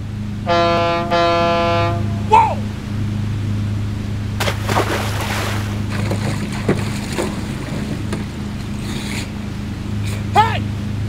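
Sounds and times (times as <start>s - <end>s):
boat engine drone: 0.0s - 11.0s
water splashing and rushing: 4.2s - 10.0s.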